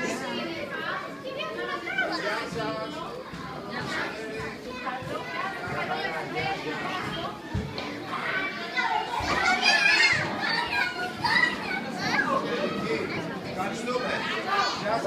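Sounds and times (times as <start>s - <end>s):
adults talking: 0.0s - 15.0s
children calling: 0.0s - 15.0s
children's voices: 0.0s - 15.0s.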